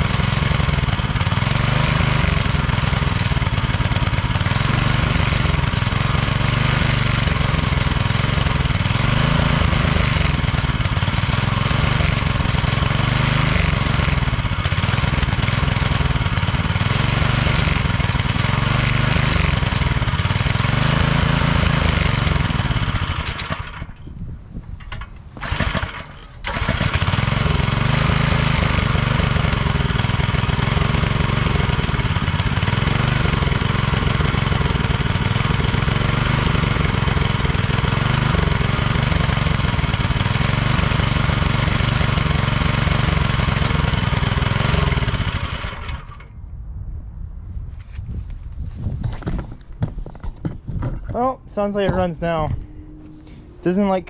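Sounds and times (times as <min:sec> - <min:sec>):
small gasoline engine running: 0:00.0 - 0:24.0, 0:24.9 - 0:46.4.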